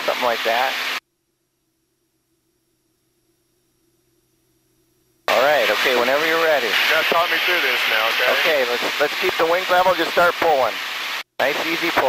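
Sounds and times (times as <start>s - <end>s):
steady hiss: 0.0s - 1.0s, 2.1s - 12.0s
faint low hum: 1.0s - 10.3s
man speaking: 5.3s - 10.8s, 11.4s - 12.0s.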